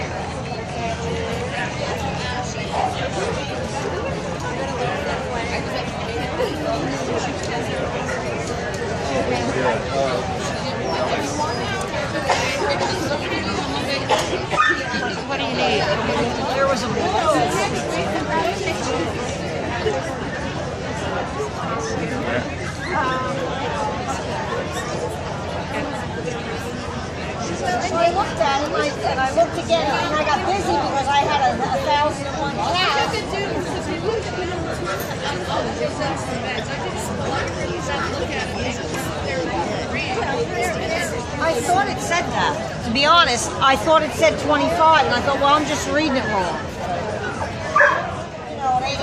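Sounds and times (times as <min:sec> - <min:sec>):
crowd babble: 0:00.0 - 0:49.0
indistinct chatter of people: 0:00.0 - 0:49.0.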